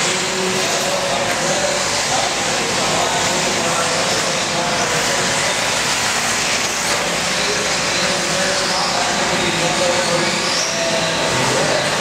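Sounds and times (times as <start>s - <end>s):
electric rc cars running on dirt: 0.0s - 12.0s.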